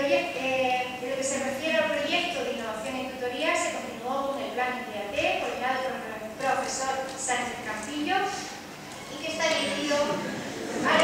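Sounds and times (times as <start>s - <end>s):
woman speaking over sound system: 0.0s - 10.2s.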